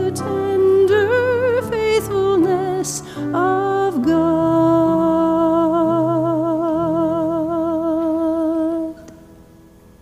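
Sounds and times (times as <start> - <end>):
person singing with vibrato: 0.0 - 9.2.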